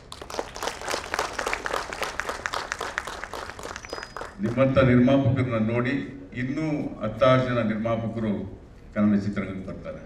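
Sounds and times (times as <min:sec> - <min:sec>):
audience applauding: 0:00.0 - 0:04.7.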